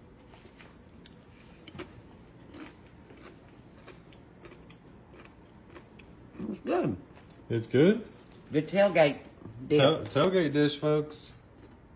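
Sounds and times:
person chewing chip crunching: 0.4 - 7.4, 11.4 - 11.9.

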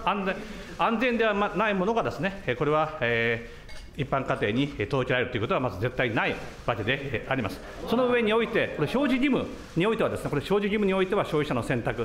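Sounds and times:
man speaking at a microphone: 0.0 - 12.0.

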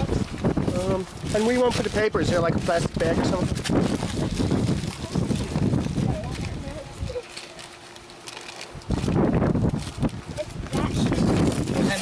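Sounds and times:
paper bag and tissue rustling: 0.0 - 12.0.

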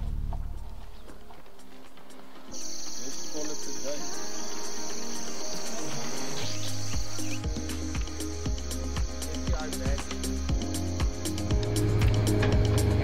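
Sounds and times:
deep beat: 0.0 - 1.7, 4.9 - 13.0
background music: 0.0 - 13.0
insect chorus chirring: 0.7 - 13.0.

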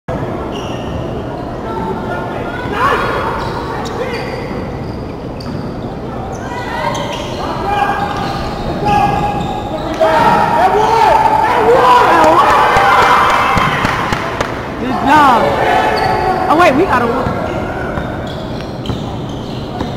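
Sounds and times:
sneakers squeaking: 0.2 - 11.4, 14.9 - 19.9
voices calling out: 0.5 - 19.9.

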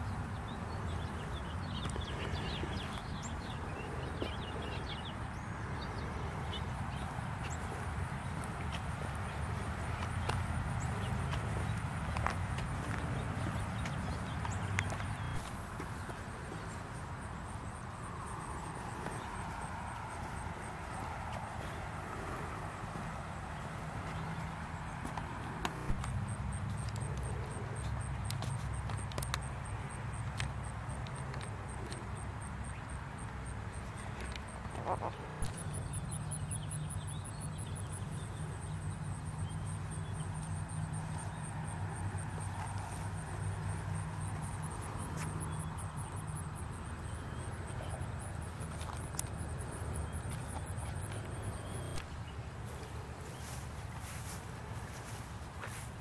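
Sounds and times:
footsteps through grass: 7.5 - 16.4, 52.0 - 56.0.

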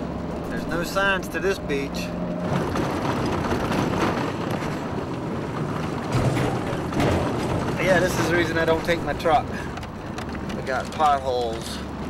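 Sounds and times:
car engine and tyres on gravel: 0.0 - 12.0
car jolting: 2.4 - 12.0.

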